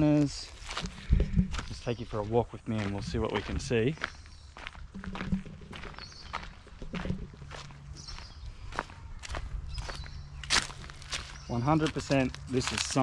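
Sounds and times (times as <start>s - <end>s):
footsteps on dry leaves: 0.0s - 13.0s.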